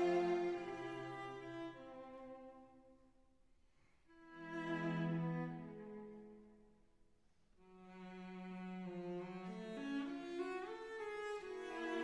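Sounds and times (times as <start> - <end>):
bowed strings playing slow notes: 0.0 - 1.1.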